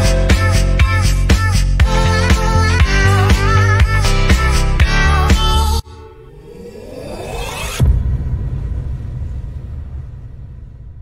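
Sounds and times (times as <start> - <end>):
rising swoosh: 5.9 - 10.2
deep boom rumble: 7.4 - 11.0.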